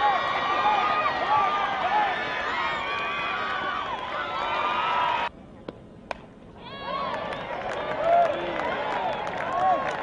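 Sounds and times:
crowd cheering and shouting: 0.0 - 5.3.

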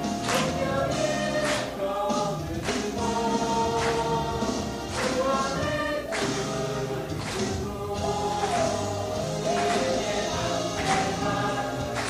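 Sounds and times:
instrumental accompaniment: 0.0 - 12.0
voices singing together: 0.0 - 12.0.

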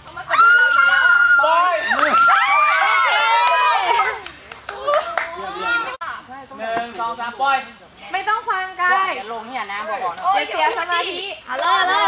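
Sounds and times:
group shouting excitedly: 0.3 - 4.2.

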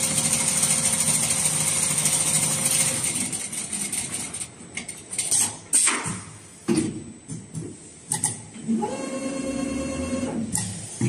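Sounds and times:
sewing machine motor whine: 8.8 - 10.4.

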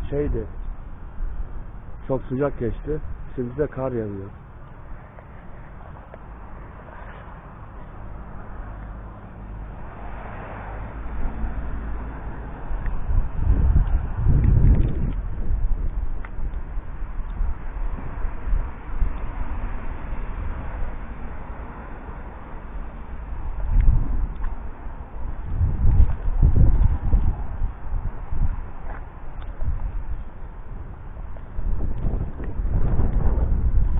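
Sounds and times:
outdoor background noise: 0.0 - 33.9
wind buffeting microphone: 0.0 - 33.9.

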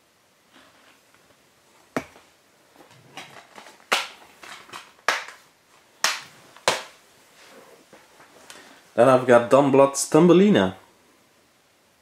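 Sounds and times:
plastic cases clacking: 2.0 - 5.4
plastic rattles: 2.8 - 5.4.

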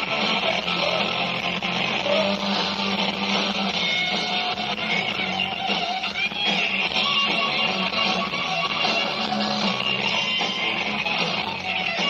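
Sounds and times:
live rock band playing: 0.0 - 12.0
loud electric guitars: 0.0 - 12.0.

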